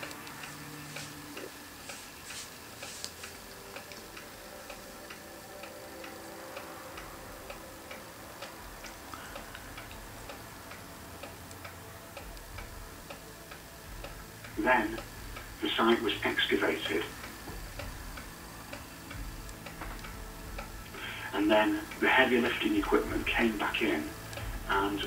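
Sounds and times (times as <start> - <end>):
faint steady hum: 0.0 - 25.0
regular ticking: 0.0 - 25.0.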